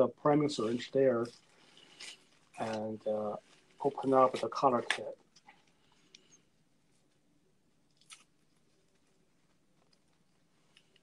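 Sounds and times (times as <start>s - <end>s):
plastic bag crinkling: 1.2s - 6.3s.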